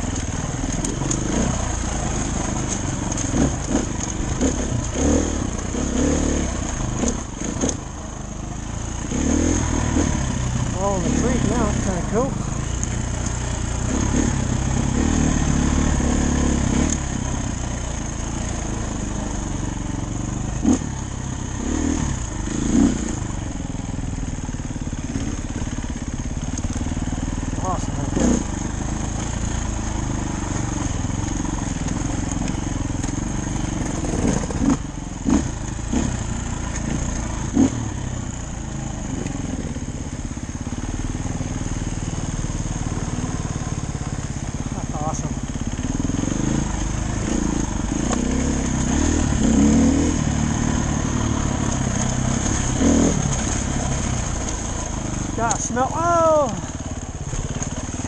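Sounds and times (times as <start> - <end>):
dirt bike engine running: 0.0 - 58.0.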